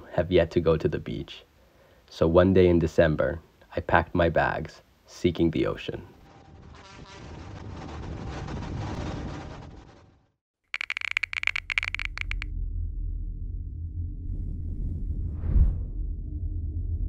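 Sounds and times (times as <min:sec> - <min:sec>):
low rumbling drone: 0:12.5 - 0:17.0.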